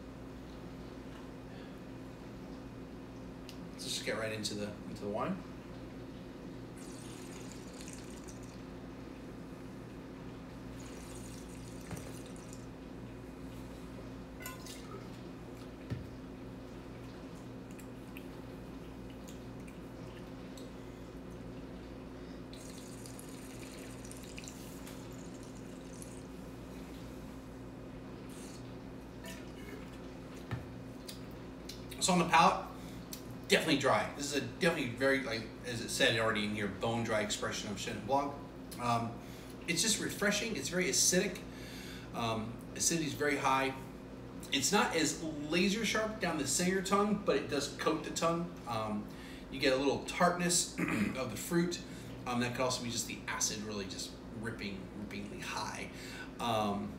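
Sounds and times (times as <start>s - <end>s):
low electrical hum: 0.0s - 56.9s
airy slurping of wine: 6.8s - 8.4s, 10.8s - 12.6s.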